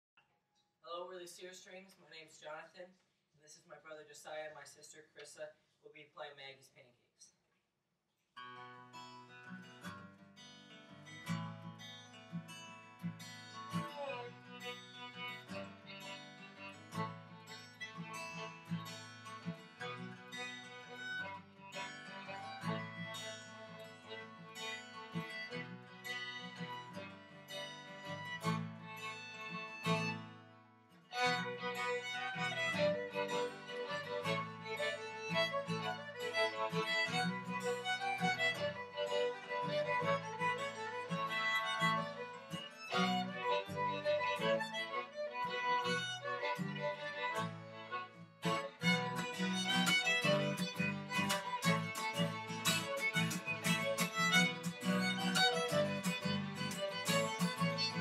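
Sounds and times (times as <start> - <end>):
acoustic guitar: 8.4 - 58.0
fiddles playing a tune: 13.4 - 30.4, 31.1 - 58.0.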